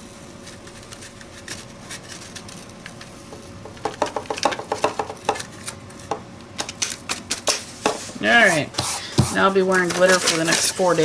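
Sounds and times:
paper crinkling and rustling: 0:09.6 - 0:11.0.

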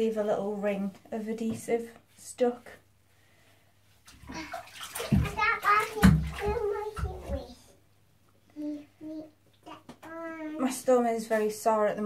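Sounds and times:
water splashing in bathtub: 0:04.0 - 0:07.7
young child talking: 0:05.2 - 0:07.7, 0:08.6 - 0:10.7.

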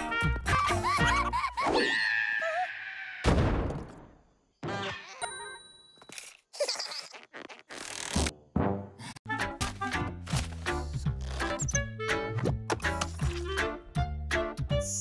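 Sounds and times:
playful cartoon music: 0:00.0 - 0:01.9, 0:08.2 - 0:15.0.

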